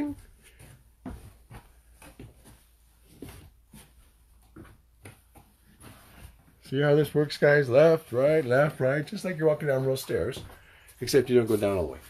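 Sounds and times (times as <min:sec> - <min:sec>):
footsteps on wooden stairs: 0:00.0 - 0:06.6, 0:08.1 - 0:12.0.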